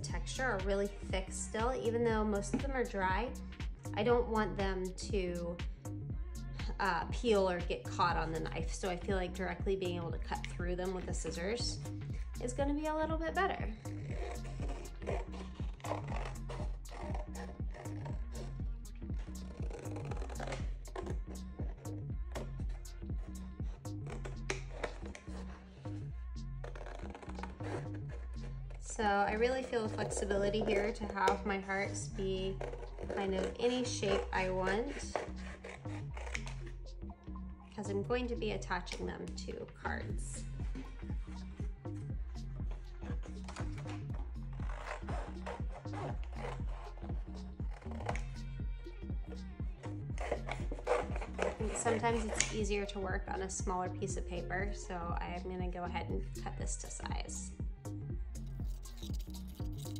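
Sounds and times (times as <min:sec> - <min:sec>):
background music with bass line: 0:00.0 - 0:59.9
scissors cutting thick paper: 0:14.0 - 0:18.5, 0:19.2 - 0:25.6, 0:26.6 - 0:28.9, 0:32.4 - 0:36.7, 0:43.2 - 0:48.5, 0:49.8 - 0:52.6, 0:58.6 - 0:59.9.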